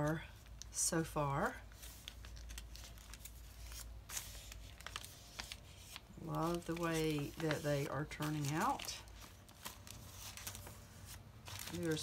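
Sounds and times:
pages rustling: 0:01.6 - 0:12.0.

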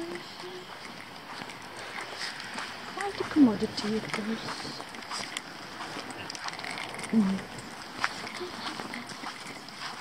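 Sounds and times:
footsteps on paving: 0:00.0 - 0:10.0
clothing rustling: 0:00.7 - 0:10.0.

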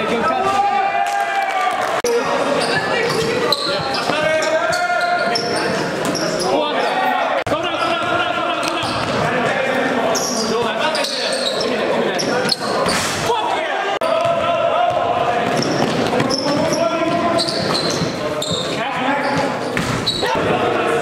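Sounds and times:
indistinct echoing voices: 0:00.0 - 0:21.0.

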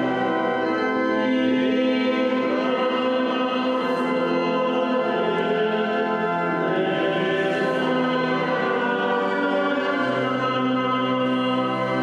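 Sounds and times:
pipe organ chords: 0:00.0 - 0:12.0.

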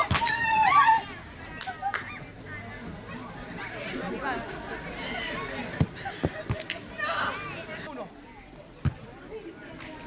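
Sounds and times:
players talking: 0:00.0 - 0:10.0.

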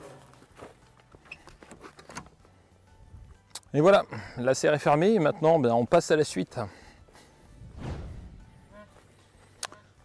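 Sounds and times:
whoosh transition effect: 0:07.5 - 0:08.9.

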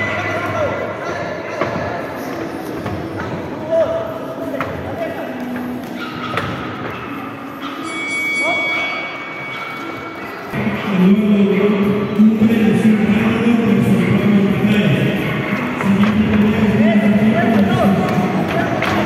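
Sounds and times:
echoing indistinct voices: 0:00.0 - 0:19.0.

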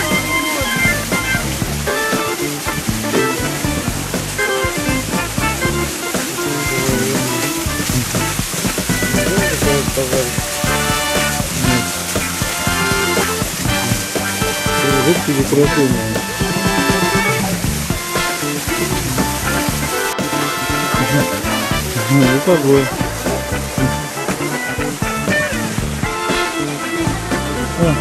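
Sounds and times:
music with held notes: 0:00.0 - 0:28.0
waterfall splashing into pond: 0:00.0 - 0:28.0.

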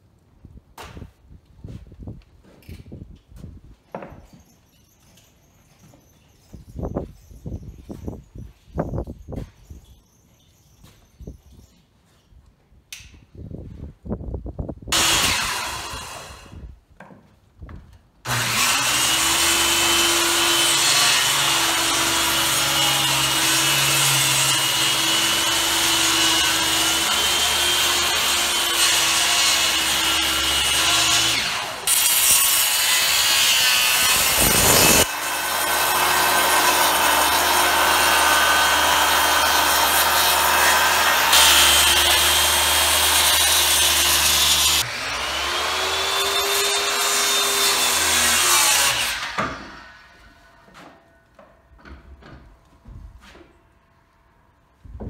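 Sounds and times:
circular saw cutting wood: 0:14.9 - 0:16.6, 0:18.3 - 0:50.6.

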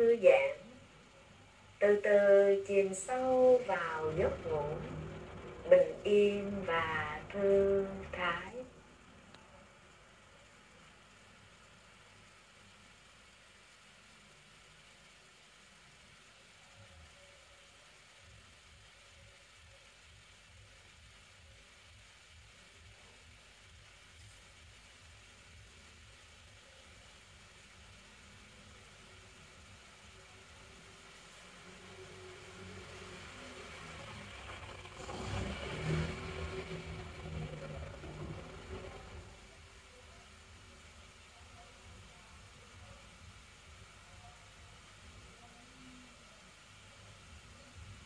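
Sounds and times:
motor vehicle passing: 0:03.0 - 0:08.9, 0:31.6 - 0:39.7.

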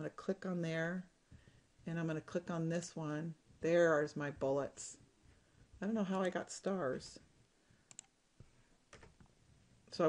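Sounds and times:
computer mouse clicks: 0:07.9 - 0:08.2.

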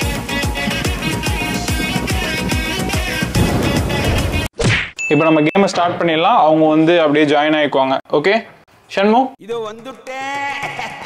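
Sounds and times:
electronic intro music: 0:00.0 - 0:04.5.

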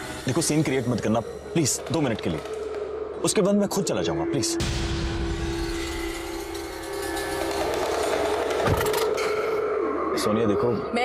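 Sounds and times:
dramatic synthesizer score: 0:00.0 - 0:11.0.

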